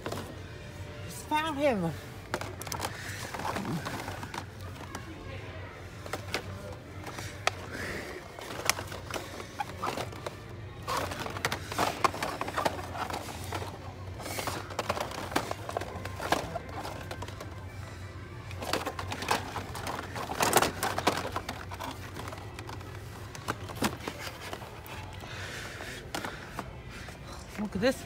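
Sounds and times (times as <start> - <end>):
background music: 0.0 - 28.0
plastic packs clacking: 0.0 - 28.0.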